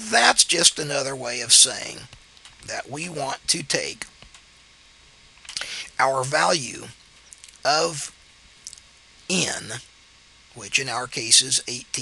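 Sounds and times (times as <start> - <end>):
small clicks: 2.1 - 2.7.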